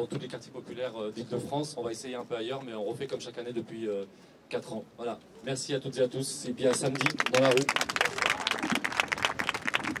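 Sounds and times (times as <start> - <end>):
crowd clapping: 6.6 - 10.0.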